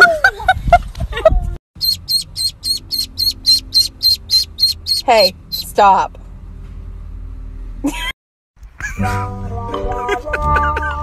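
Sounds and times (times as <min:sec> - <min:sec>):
duckling peeping: 0:01.8 - 0:05.8.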